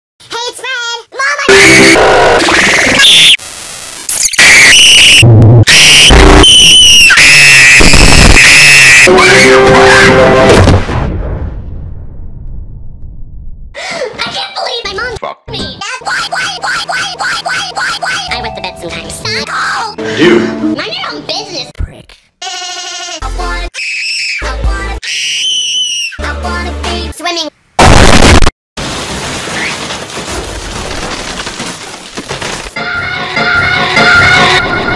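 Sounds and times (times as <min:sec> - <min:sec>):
boy screaming distorted: 0:04.4 - 0:10.2.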